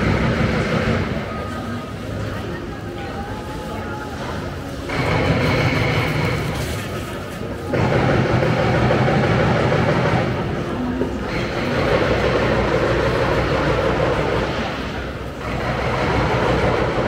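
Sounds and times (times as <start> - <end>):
train rumbling past: 0.0 - 17.0.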